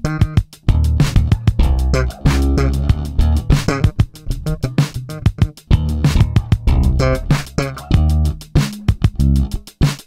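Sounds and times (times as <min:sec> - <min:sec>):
drum machine beat: 0:00.0 - 0:10.0
funk electric bass line: 0:00.0 - 0:10.0.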